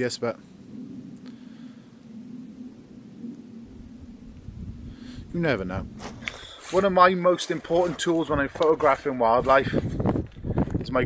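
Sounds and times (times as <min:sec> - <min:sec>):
faint steady hum: 0:00.0 - 0:07.8
wind buffeting microphone: 0:00.0 - 0:11.0.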